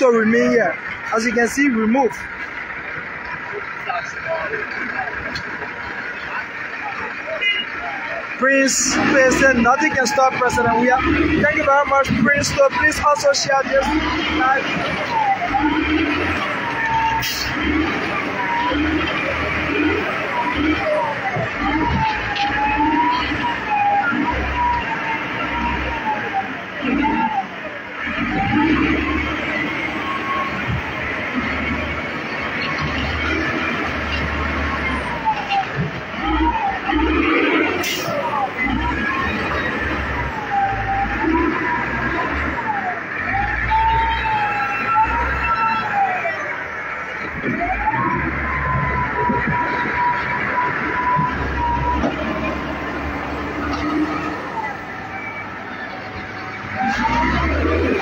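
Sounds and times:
siren wailing: 0.0 - 2.4, 3.2 - 58.0
street traffic rumble: 0.0 - 58.0.

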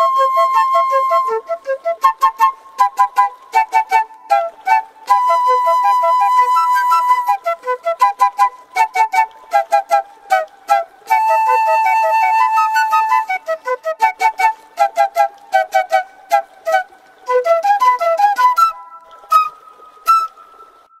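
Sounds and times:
bamboo flutes duet: 0.0 - 21.0.

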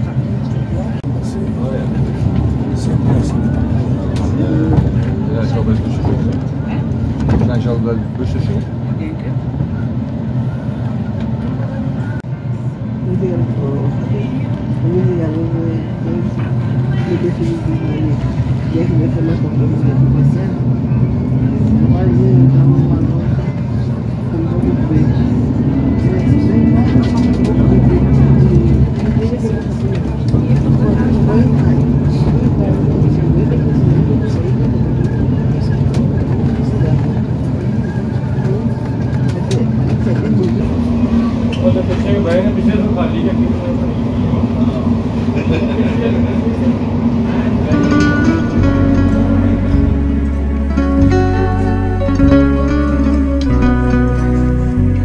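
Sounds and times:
bus engine and road rumble: 0.0 - 55.0
passengers' voices: 0.0 - 55.0.

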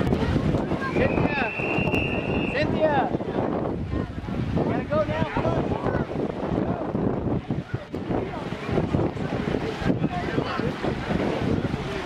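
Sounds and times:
crowd chatter: 0.0 - 12.0
whistle blast: 0.9 - 2.7.

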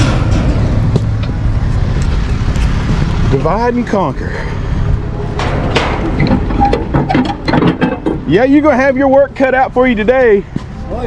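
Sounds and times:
low steady rumble: 0.0 - 11.0
metallic clanks on steel deck: 5.2 - 8.6.

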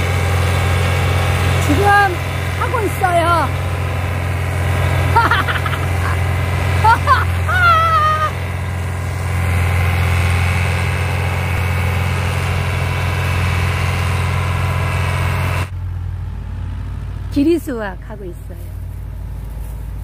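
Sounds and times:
combine harvester engine drone: 0.0 - 20.0.

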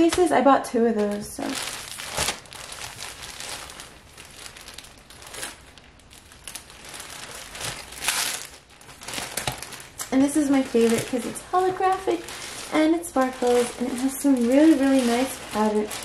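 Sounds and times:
plastic bag crinkling: 0.0 - 16.0.

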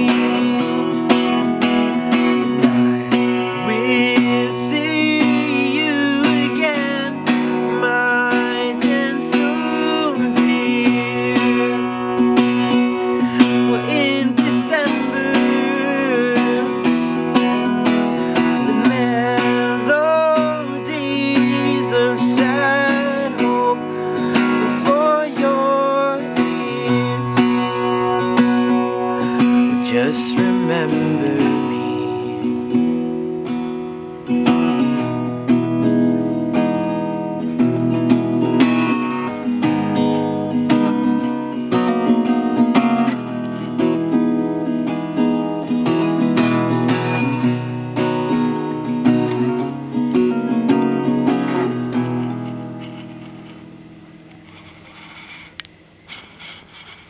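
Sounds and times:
acoustic guitar playing: 0.0 - 57.0.

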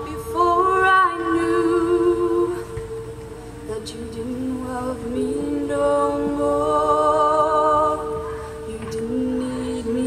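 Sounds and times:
female choir humming chords: 0.0 - 10.0.

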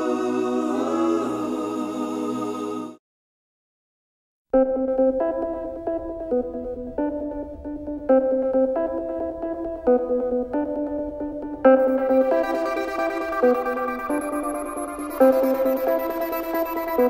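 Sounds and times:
electronic keyboard chords: 4.6 - 17.0.

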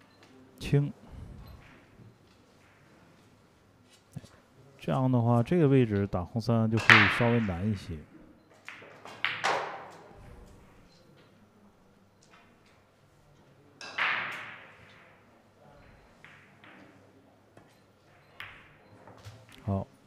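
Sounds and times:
pool balls clicking: 6.8 - 7.9, 8.5 - 11.2, 12.2 - 19.8.

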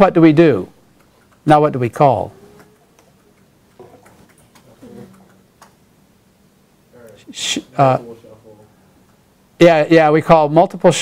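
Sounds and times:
faint clicks: 1.0 - 1.5.

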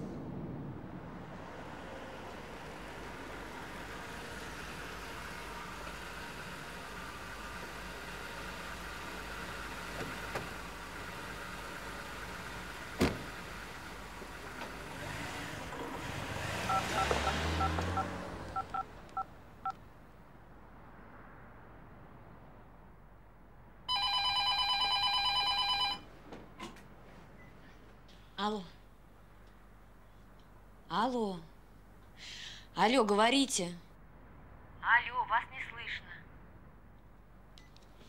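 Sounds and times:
passing cars: 0.0 - 24.0
car engine running: 2.4 - 19.2
car door shutting: 12.9 - 13.4.

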